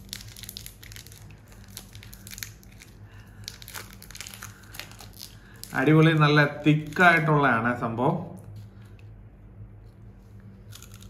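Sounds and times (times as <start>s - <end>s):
wrapper crinkling: 0.0s - 7.4s, 10.3s - 11.0s.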